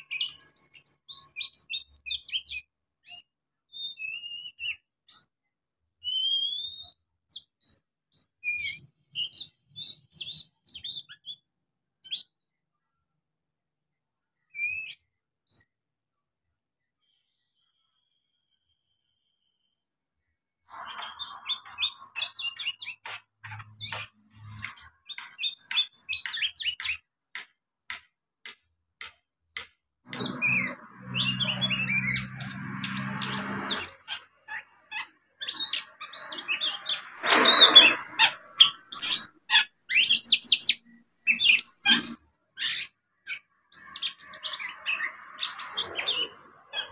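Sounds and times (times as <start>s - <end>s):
bird whistled chirps and twittering: 0.0s - 5.4s, 6.0s - 11.4s, 14.5s - 15.7s, 20.7s - 27.0s, 30.1s - 46.9s
harsh rasping bird call: 30.1s - 40.7s.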